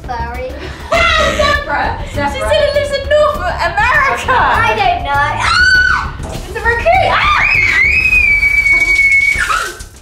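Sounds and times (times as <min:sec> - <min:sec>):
shower water spraying: 0:05.8 - 0:10.0.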